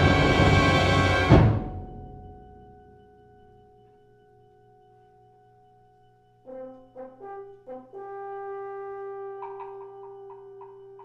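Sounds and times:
concert band brass playing: 0.0s - 1.7s, 6.5s - 10.8s.

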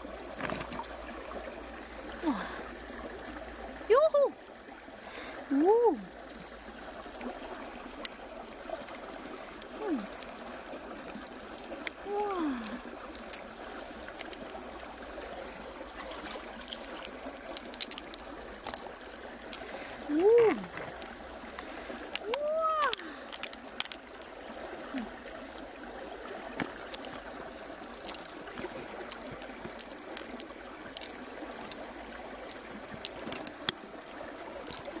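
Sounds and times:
running water: 0.0s - 35.0s
wet clicks and squelches: 14.1s - 14.5s, 16.0s - 24.3s, 26.6s - 35.0s.

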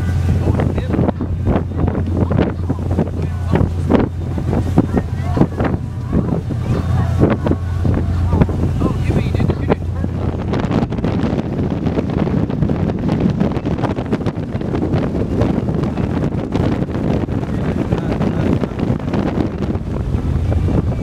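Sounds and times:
boat engines droning: 0.0s - 21.0s
water rushing: 0.0s - 21.0s
wind buffeting microphone: 0.0s - 21.0s.

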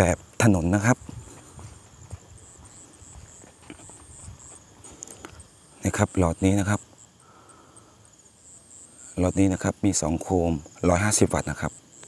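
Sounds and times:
faint footsteps on ground: 0.0s - 5.6s
crickets chirping: 0.0s - 12.0s.

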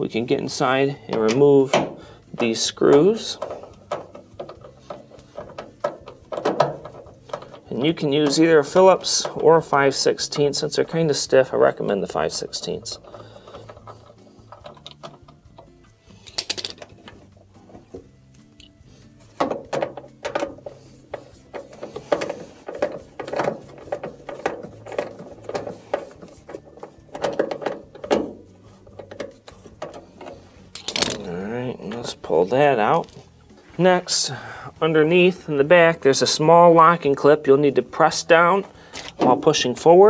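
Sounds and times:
nut driver clicks and creaks: 1.1s - 10.5s, 12.5s - 18.8s, 19.4s - 32.1s, 38.9s - 39.4s.

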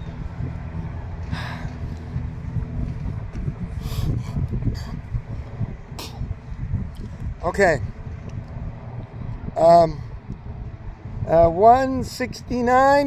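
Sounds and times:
distant engine hum: 0.0s - 13.0s
wind buffeting microphone: 0.0s - 13.0s.

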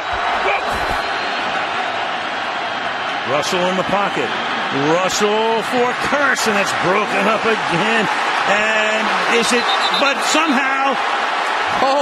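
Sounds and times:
stadium crowd roar: 0.0s - 12.0s
faint voices in crowd: 2.9s - 12.0s.

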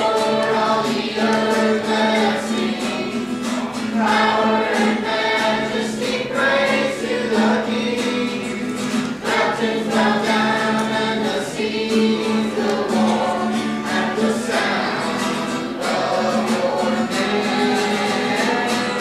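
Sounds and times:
youth choir singing: 0.0s - 19.0s.

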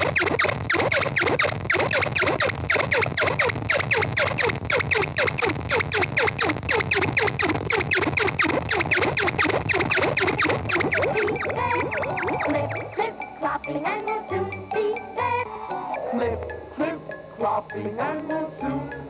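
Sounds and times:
falling-pitch electronic chirps: 1.2s - 13.3s.

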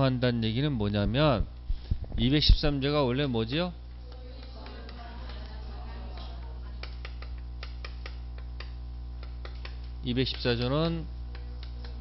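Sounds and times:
steady low hum: 0.0s - 12.0s
chalk tapping and scratching on blackboard: 6.8s - 12.0s.

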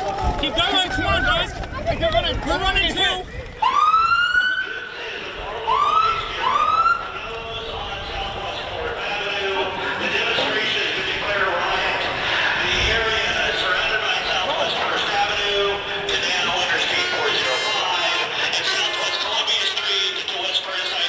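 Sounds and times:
crowd and street noise: 0.0s - 21.0s
police siren whoops: 3.6s - 4.8s, 5.6s - 7.2s.

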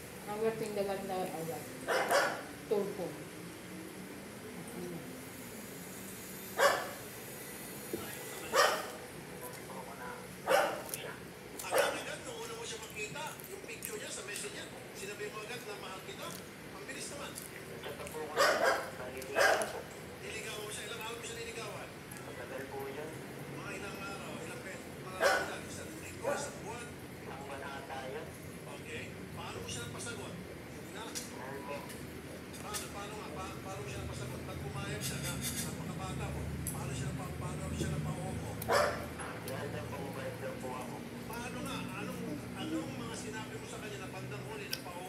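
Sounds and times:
low background talk: 0.0s - 5.7s, 6.6s - 45.0s
dog barking: 1.9s - 2.5s, 6.6s - 7.0s, 8.5s - 9.0s, 10.1s - 11.0s, 11.7s - 12.1s, 18.4s - 19.8s, 25.2s - 25.6s, 26.2s - 26.6s, 38.7s - 39.4s.

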